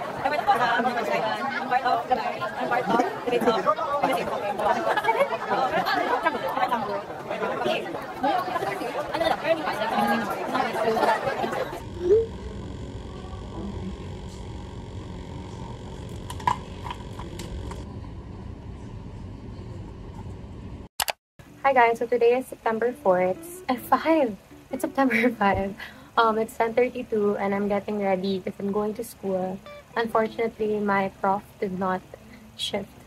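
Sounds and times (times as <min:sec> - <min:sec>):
young women chatting: 0:00.0 - 0:11.8, 0:21.6 - 0:33.0
steady low hum: 0:00.0 - 0:33.0.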